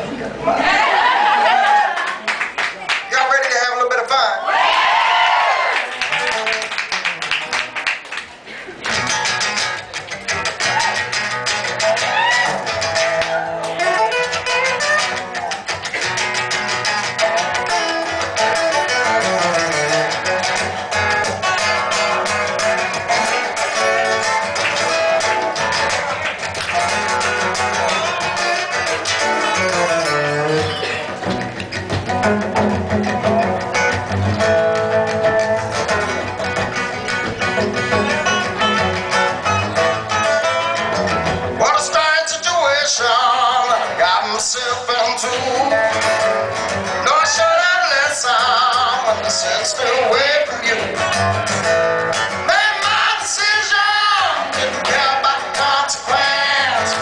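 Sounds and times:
acoustic guitars playing: 0:05.5 - 0:57.0
slide guitar lead lines: 0:06.2 - 0:57.0.

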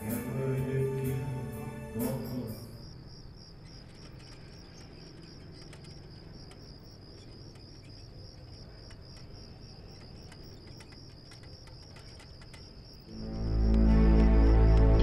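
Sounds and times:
crickets chirping: 0:00.0 - 0:15.0.

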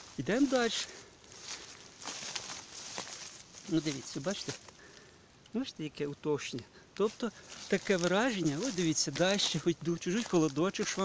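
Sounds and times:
footsteps crunching through leaf litter: 0:00.0 - 0:04.8, 0:07.0 - 0:11.0.

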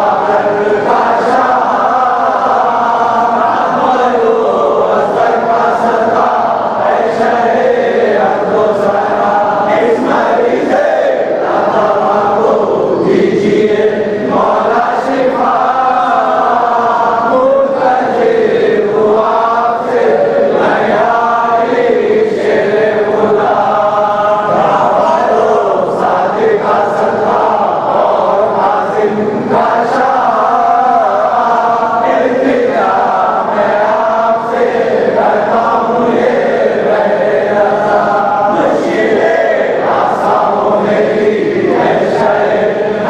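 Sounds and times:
men chanting a devotional song: 0:00.0 - 0:43.0.

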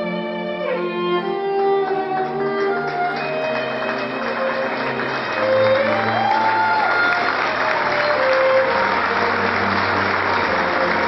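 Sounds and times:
violin playing long notes: 0:00.0 - 0:11.0.

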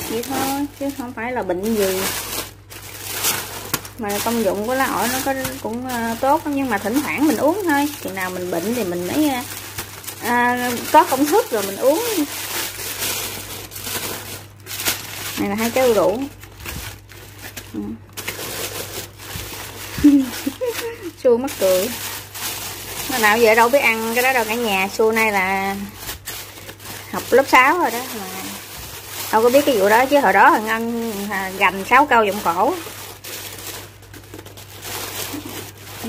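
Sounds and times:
woman's voice: 0:00.0 - 0:02.3, 0:04.0 - 0:09.6, 0:10.2 - 0:12.4, 0:15.4 - 0:16.4, 0:17.7 - 0:18.0, 0:20.0 - 0:22.1, 0:23.0 - 0:26.0, 0:27.0 - 0:28.7, 0:29.3 - 0:33.0
plastic and paper rustling: 0:00.0 - 0:36.0.

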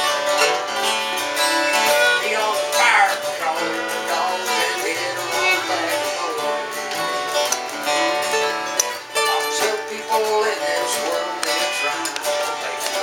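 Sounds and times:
acoustic guitars strumming: 0:00.0 - 0:13.0
fiddle sliding melody: 0:00.0 - 0:13.0.

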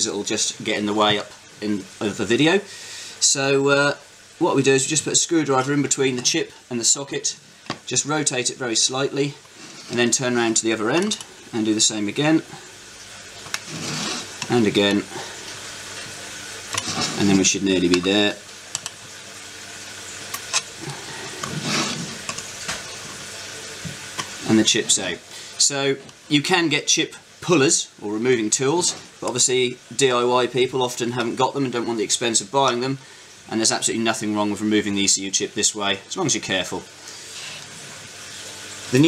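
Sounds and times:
man speaking: 0:00.0 - 0:12.6, 0:14.5 - 0:15.3, 0:17.0 - 0:18.4, 0:24.4 - 0:36.9
steady hiss: 0:00.0 - 0:39.0.

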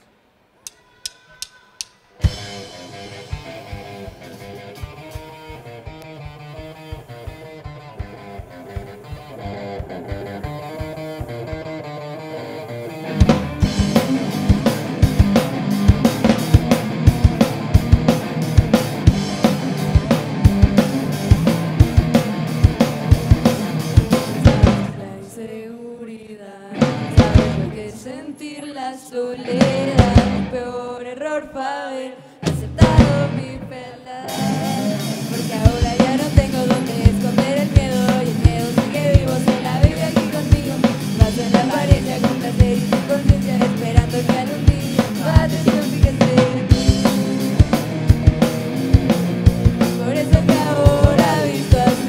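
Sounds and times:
live rock band playing: 0:02.2 - 0:25.0, 0:26.8 - 0:27.8, 0:29.5 - 0:30.6, 0:32.4 - 0:52.0
hard drum strikes: 0:13.1 - 0:24.9, 0:34.3 - 0:52.0.

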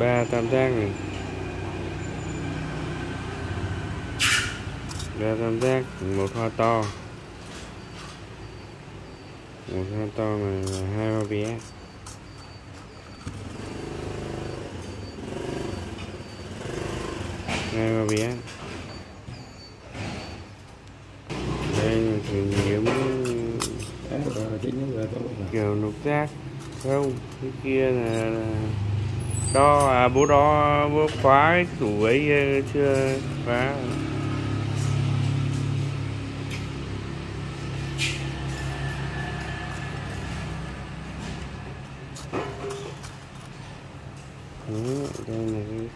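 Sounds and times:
vehicle engine humming: 0:00.0 - 0:19.4, 0:20.5 - 0:45.9.

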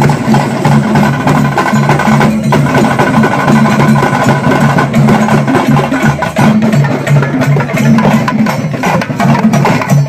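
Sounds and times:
drums beaten fast: 0:00.0 - 0:10.0
hand cymbals clashing: 0:00.0 - 0:10.0.

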